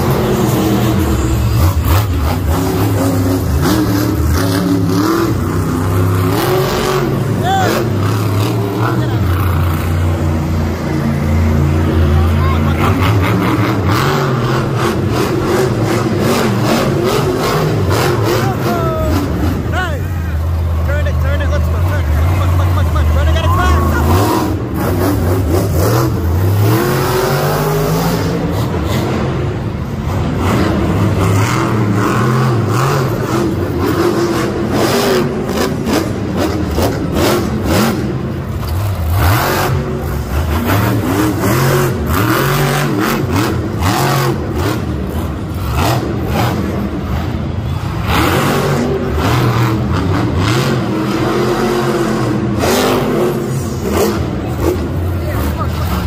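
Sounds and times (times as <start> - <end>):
truck engines revving: 0.0 - 56.0
voices: 17.4 - 24.8, 54.0 - 56.0.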